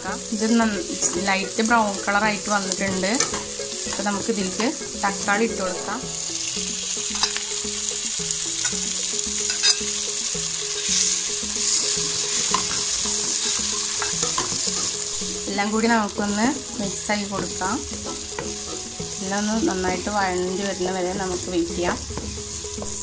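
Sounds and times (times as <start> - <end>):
onions sizzling in hot oil: 0.0 - 23.0
spatula scraping pan: 10.7 - 15.3.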